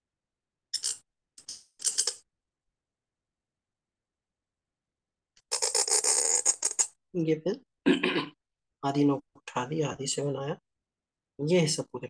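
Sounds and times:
pen scratching on paper: 5.4 - 6.9.

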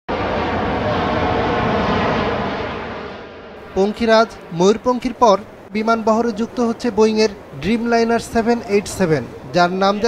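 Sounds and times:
faint engine whine: 0.1 - 10.0
jet engines roaring: 0.1 - 10.0.

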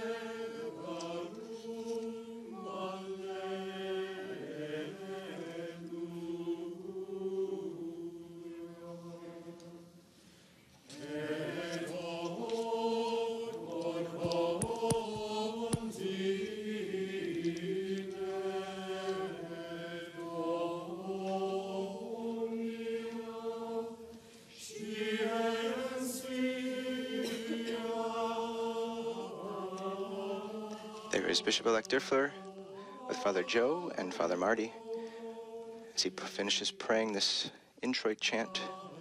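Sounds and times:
church choir chanting: 0.0 - 10.1, 10.8 - 39.0.

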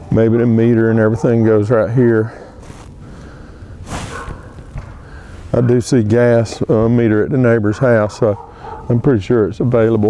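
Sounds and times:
person sniffing or exhaling: 2.5 - 5.5.

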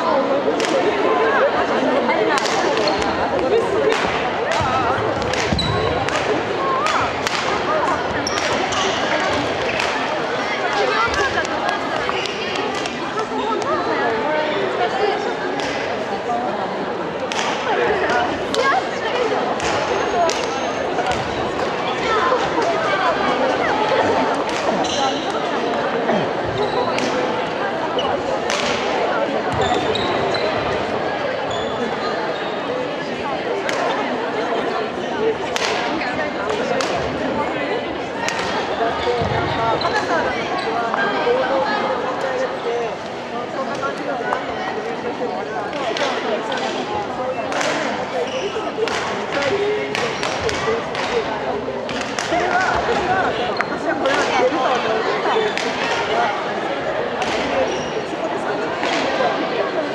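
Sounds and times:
spectators chatter: 0.0 - 59.9
racket hitting shuttlecock: 3.9 - 7.6.

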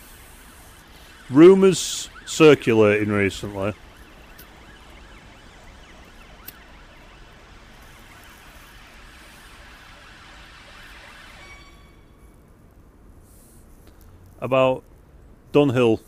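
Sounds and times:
pipe puffing hiss: 0.0 - 1.2.

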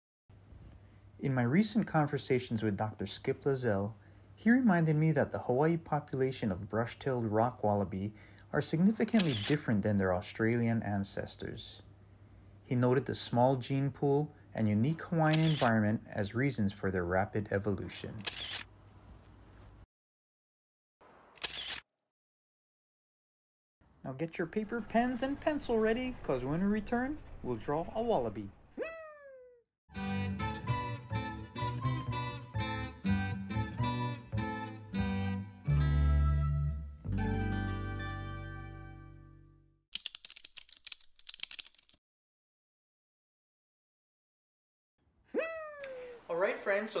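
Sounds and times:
camera shutter click: 9.2 - 9.6, 15.3 - 15.7, 18.2 - 18.7, 21.4 - 21.8
plucked guitar chord: 33.3 - 39.4
keyboard typing clicks: 40.0 - 41.9.

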